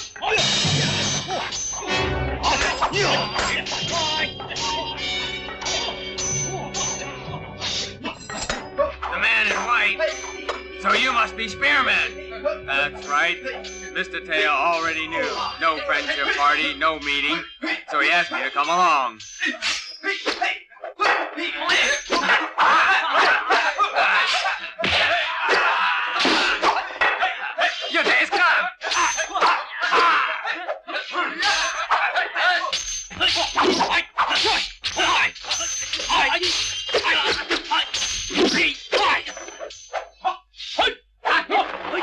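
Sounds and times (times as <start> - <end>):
men shouting: 1.9 - 18.8, 19.5 - 35.4.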